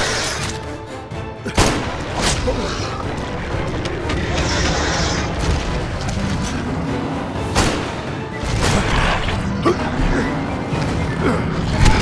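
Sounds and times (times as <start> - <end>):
orchestral action score: 0.0 - 12.0.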